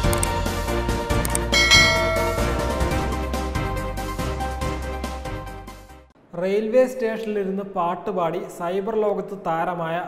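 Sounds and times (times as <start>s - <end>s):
background music: 0.0s - 6.1s
bell-like chime: 1.6s - 3.3s.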